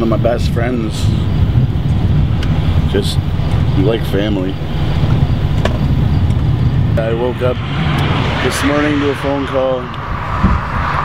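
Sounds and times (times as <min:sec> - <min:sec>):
vehicle engine idling: 0:00.0 - 0:08.6.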